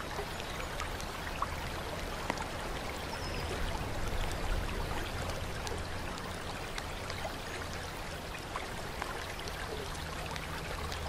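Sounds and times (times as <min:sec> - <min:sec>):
fountain water trickling into basin: 0:00.0 - 0:11.0
light water drips: 0:00.0 - 0:11.0.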